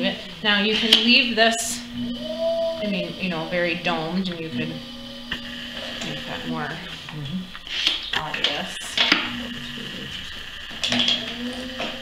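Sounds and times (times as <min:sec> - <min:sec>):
high whine: 0:00.0 - 0:12.0
potter's wheel motor hum: 0:00.0 - 0:12.0.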